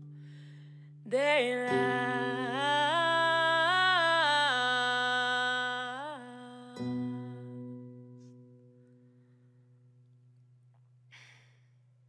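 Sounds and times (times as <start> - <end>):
person sighing: 11.2 - 11.7.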